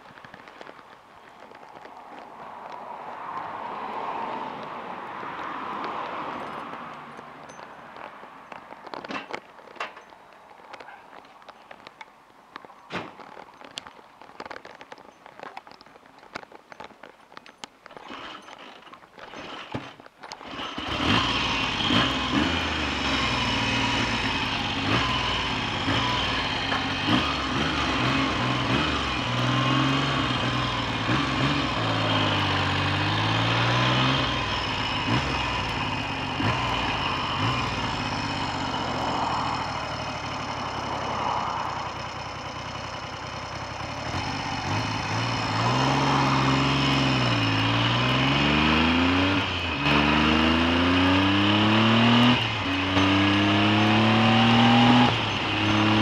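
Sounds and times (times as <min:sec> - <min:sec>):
motorcycle engine revving: 0:19.3 - 0:56.0.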